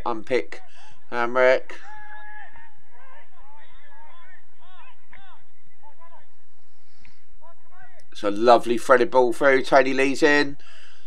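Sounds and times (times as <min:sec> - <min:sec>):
distant footballers shouting: 0:00.0 - 0:11.0.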